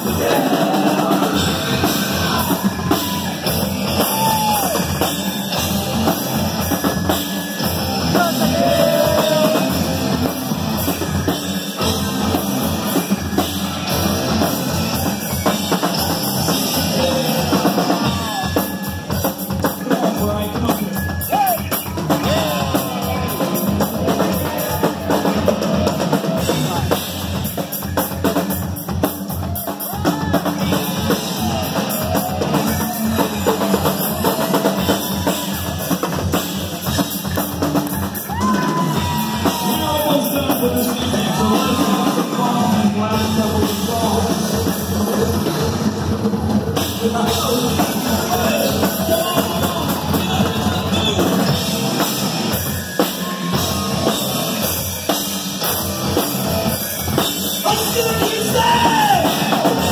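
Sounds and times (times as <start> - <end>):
drum kit beat: 0.0 - 59.9
rock band playing: 0.0 - 59.9.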